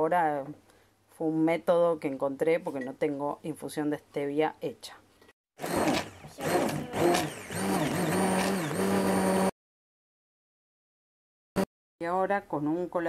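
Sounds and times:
immersion blender running: 5.6s - 9.6s.

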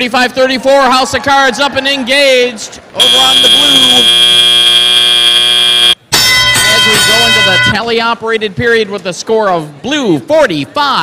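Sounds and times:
loud electronic buzzer: 3.0s - 6.0s
steady signal tone: 3.0s - 6.0s.

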